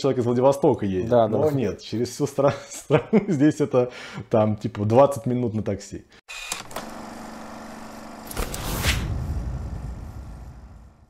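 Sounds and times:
sweeping whoosh: 8.6 - 11.0
deep boom: 8.9 - 11.0.

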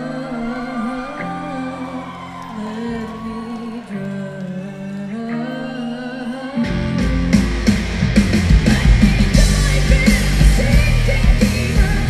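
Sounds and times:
person singing long notes: 0.0 - 7.7
rock band playing: 1.0 - 12.0.

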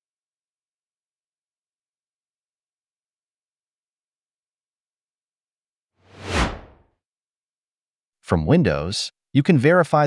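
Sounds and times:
whoosh sound effect: 6.1 - 6.8.

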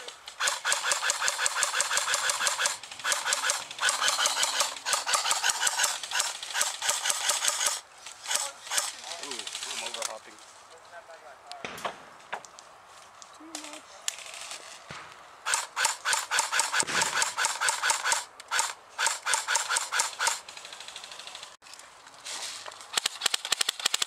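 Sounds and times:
scattered shooting: 0.3 - 10.0, 15.4 - 21.4, 23.0 - 24.0
airsoft rifle automatic fire: 0.4 - 8.9, 15.4 - 21.1, 23.0 - 24.0.

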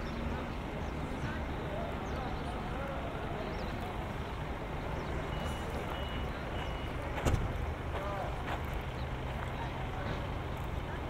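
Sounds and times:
distant traffic rumble: 0.0 - 11.0
thump: 7.2 - 7.6.

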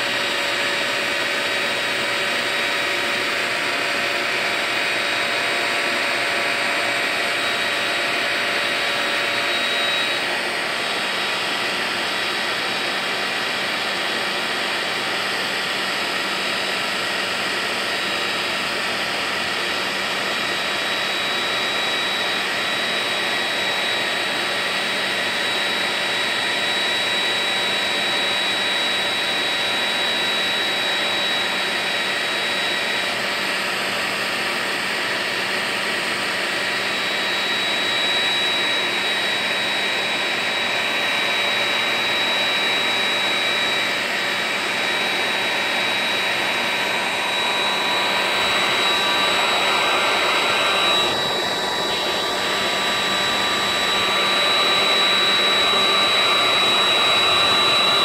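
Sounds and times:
hair dryer running: 0.0 - 58.0.

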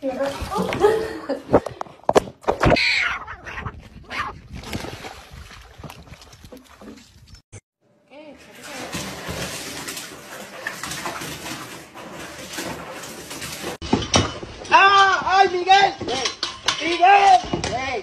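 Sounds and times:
cat meowing loudly: 2.8 - 3.7.

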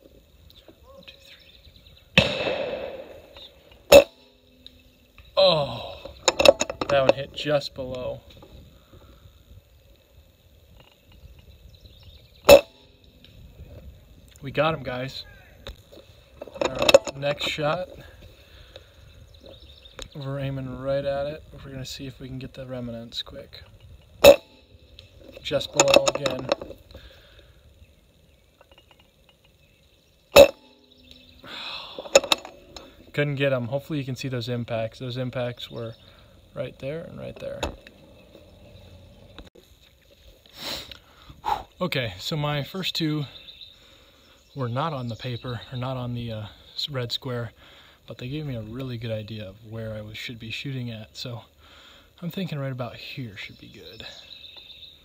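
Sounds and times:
faint background noise: 0.0 - 55.0
faint outdoor background noise: 0.0 - 55.0
air rifle shot: 2.2 - 4.0.

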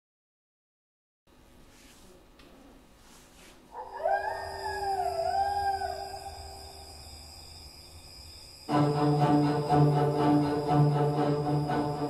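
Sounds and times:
long wavering howl: 3.7 - 12.0
faint steady drone: 3.8 - 12.0.

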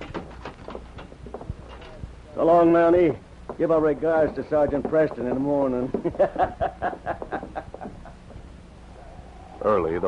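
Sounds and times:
man laughing mockingly: 5.9 - 8.3.

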